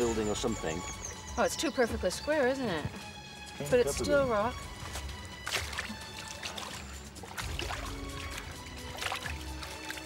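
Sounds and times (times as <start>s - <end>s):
ambient music with bass swells: 0.0s - 10.0s.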